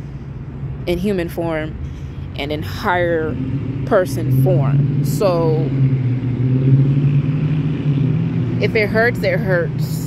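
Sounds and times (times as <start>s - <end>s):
motor vehicle engine hum: 0.0s - 10.0s.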